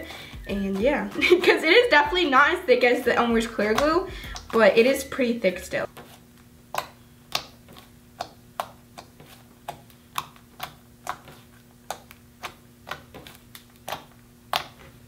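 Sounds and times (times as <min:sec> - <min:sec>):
fingers pressing sticky slime: 0:03.4 - 0:04.6, 0:06.6 - 0:15.0
wet clicks and pops: 0:03.6 - 0:04.6, 0:06.7 - 0:09.1.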